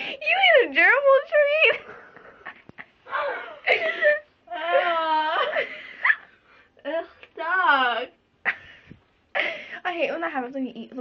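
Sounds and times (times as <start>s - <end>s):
girl moaning and whining: 3.1s - 5.7s.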